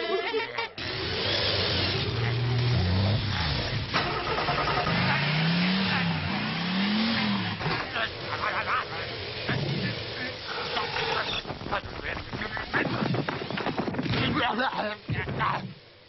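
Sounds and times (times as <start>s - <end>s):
cartoon engine revving: 0.8s - 11.5s
loud steady hiss: 0.8s - 16.0s.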